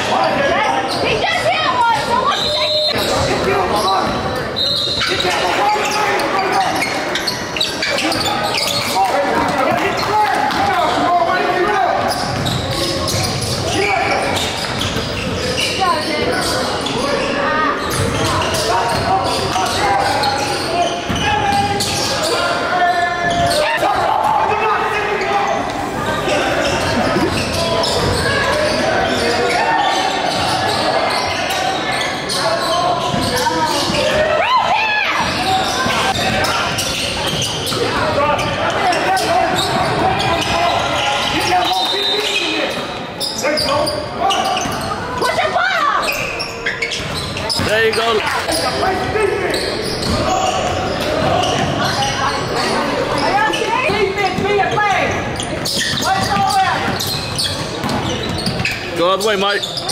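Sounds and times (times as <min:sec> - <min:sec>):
indistinct voices: 0:00.0 - 0:59.9.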